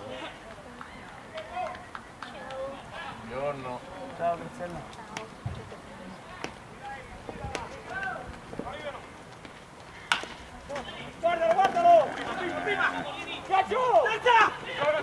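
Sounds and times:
bat cracking against ball: 10.1s - 10.4s.

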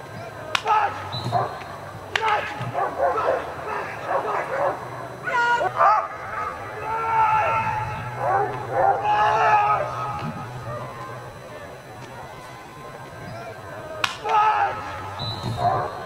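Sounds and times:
voices: 0.0s - 16.0s
sharp crack: 0.4s - 3.0s, 13.9s - 15.7s
dog barking and yipping: 0.8s - 1.6s, 2.2s - 9.9s, 15.6s - 16.0s.

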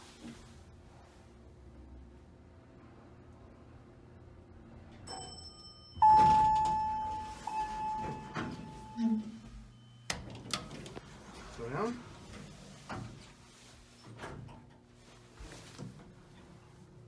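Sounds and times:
elevator chime: 5.0s - 10.5s.

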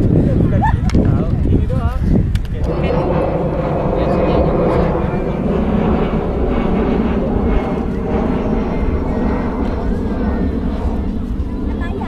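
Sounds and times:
airplane engine drone: 0.0s - 12.0s.

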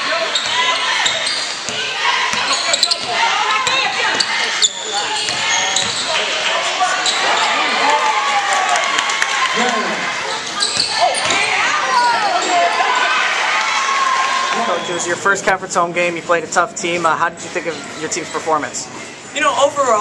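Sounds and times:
sneakers squeaking: 0.0s - 7.8s, 10.2s - 12.8s.

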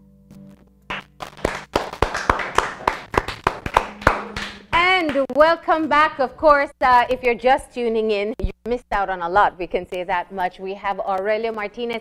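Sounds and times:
people clapping: 0.9s - 5.4s.

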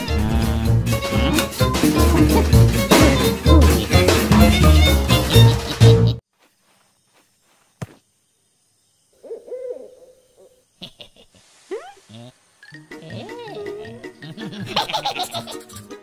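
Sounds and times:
cartoon music: 0.0s - 6.2s, 12.7s - 15.6s.

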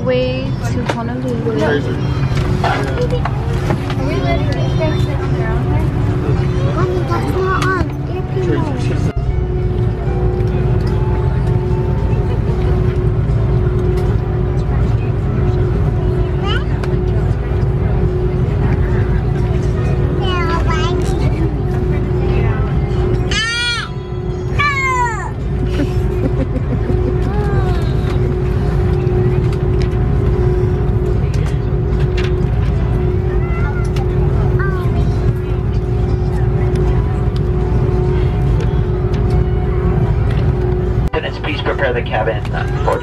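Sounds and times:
air-conditioning rumble: 0.0s - 43.0s
constant hum: 0.0s - 43.0s.

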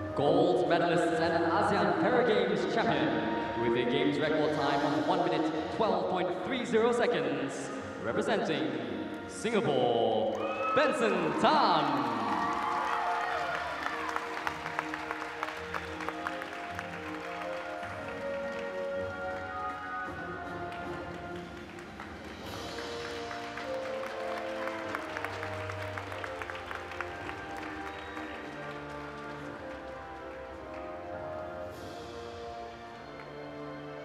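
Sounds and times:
audience applauding: 10.3s - 31.1s
instrumental music: 10.8s - 34.0s.

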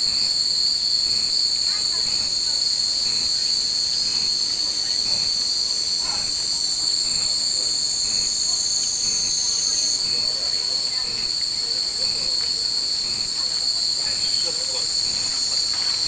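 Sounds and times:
cicadas droning: 0.0s - 16.0s.

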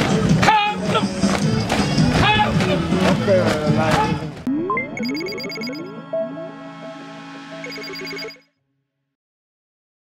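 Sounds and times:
electronic jingle with synth sweeps: 4.5s - 8.5s
pulsing bell-like tones: 4.5s - 8.5s.

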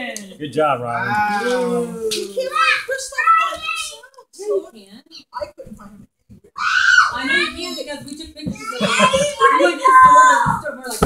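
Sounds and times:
excited voices: 0.9s - 4.2s, 6.5s - 7.8s, 8.6s - 10.8s
child screaming: 6.6s - 7.5s.

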